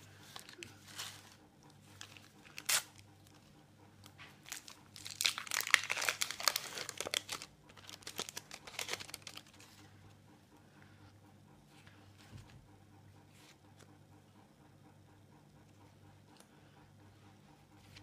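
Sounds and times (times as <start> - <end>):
wrapper crinkling and tearing: 2.0 - 3.0, 4.4 - 9.8.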